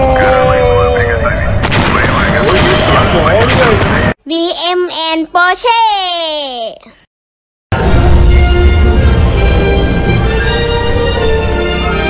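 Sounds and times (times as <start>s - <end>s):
music: 7.7s - 12.0s.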